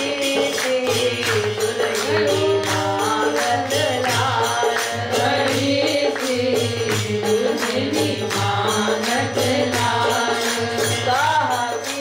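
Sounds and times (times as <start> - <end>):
steady percussion beat: 0.0 - 12.0
woman singing devotional song: 0.0 - 12.0.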